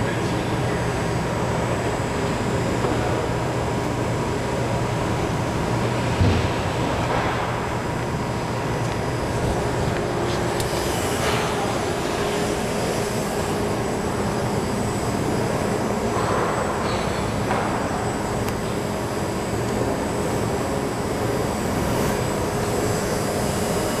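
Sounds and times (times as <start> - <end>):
machine drone and motor hum: 0.0 - 24.0.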